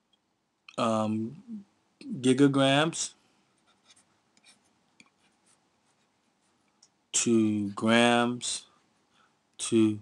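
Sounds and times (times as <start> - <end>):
stylus writing on tablet: 3.5 - 6.7.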